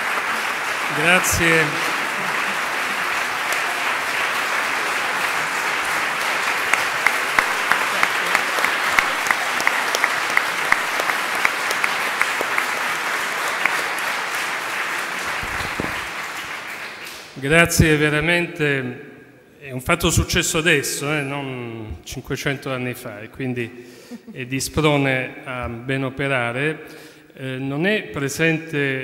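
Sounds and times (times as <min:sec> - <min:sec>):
audience applauding: 0:00.0 - 0:17.4
loud single claps: 0:00.0 - 0:17.4.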